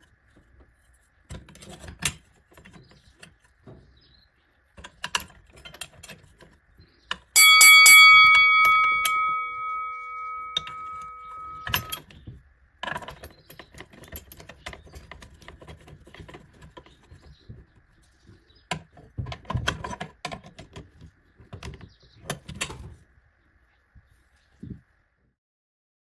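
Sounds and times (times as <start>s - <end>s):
clicks and rattles of parts: 4.8s - 7.4s, 10.5s - 17.6s, 18.7s - 23.0s
metal part knocking: 7.4s - 12.0s
metal part ringing: 7.4s - 12.0s.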